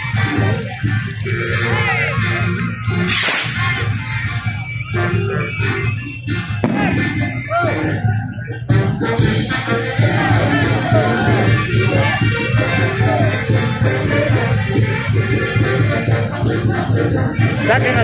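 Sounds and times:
loud music with voices: 0.0 - 18.0
hissing burst: 3.0 - 3.6.

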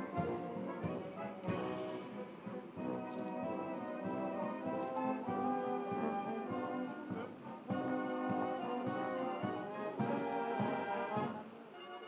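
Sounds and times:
brass band playing anthem: 0.0 - 12.0.

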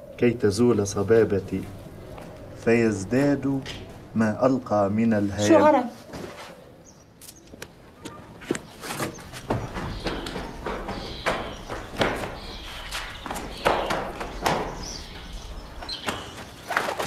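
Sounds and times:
man's running footsteps: 7.5 - 17.0
knocks and thuds: 9.0 - 17.0.

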